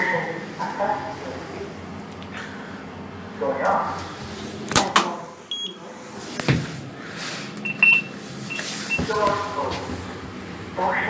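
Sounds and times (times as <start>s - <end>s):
lift button beeps: 5.5s - 5.8s, 7.6s - 9.4s.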